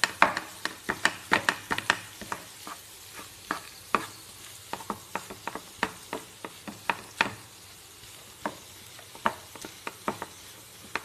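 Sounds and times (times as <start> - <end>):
spatula scraping frying pan: 0.0 - 7.4
faint sizzle: 0.0 - 11.0.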